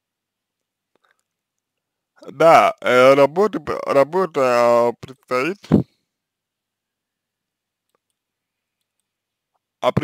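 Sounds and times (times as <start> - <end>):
very faint clicks: 7.4 - 9.7.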